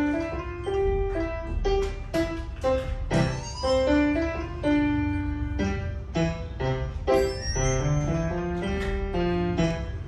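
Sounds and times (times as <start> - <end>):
digital piano melody: 0.0 - 10.0.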